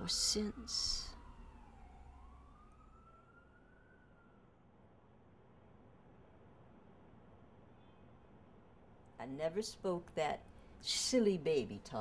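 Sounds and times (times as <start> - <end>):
faint distant siren wailing: 0.0 - 8.9.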